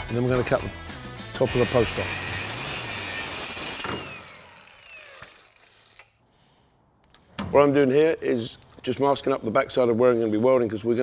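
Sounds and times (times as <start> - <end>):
angle grinder cutting steel: 1.4 - 6.2.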